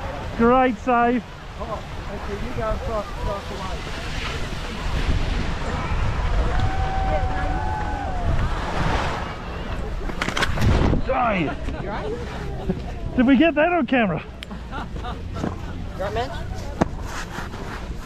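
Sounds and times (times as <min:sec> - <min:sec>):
faint voices: 0:01.4 - 0:18.0
wind on microphone: 0:02.7 - 0:11.2
skis sliding over snow: 0:16.0 - 0:18.0.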